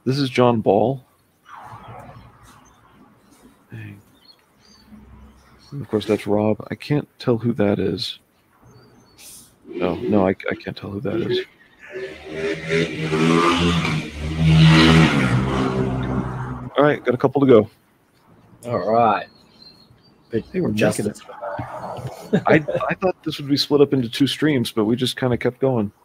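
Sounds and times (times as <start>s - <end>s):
engine-like drone: 9.7s - 17.1s.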